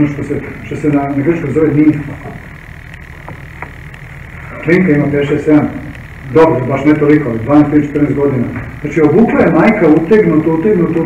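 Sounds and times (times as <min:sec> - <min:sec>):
high-pitched background hum: 0:00.0 - 0:11.0.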